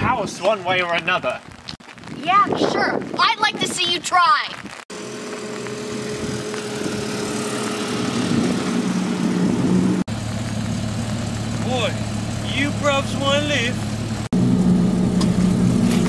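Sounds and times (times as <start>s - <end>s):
car engine running: 4.9s - 16.0s.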